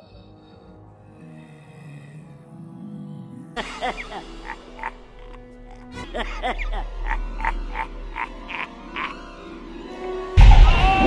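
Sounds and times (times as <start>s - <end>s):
man cackling laugh: 3.6s - 9.2s.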